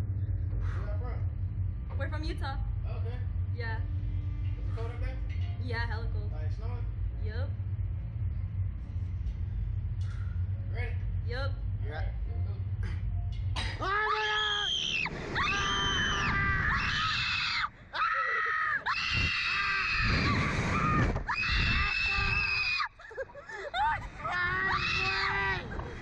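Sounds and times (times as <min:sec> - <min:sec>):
steady low rumble: 0:00.0 - 0:18.1, 0:18.7 - 0:26.0
riders screaming: 0:13.8 - 0:23.0, 0:23.7 - 0:26.0.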